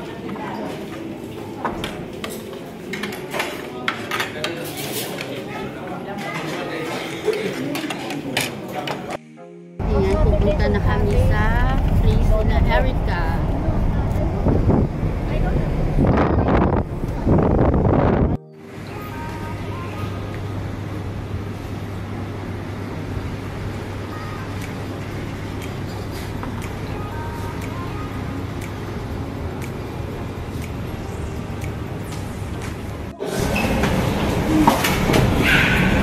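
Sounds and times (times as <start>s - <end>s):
faint music: 0.0s - 36.0s
road and wind noise in car: 9.8s - 18.4s.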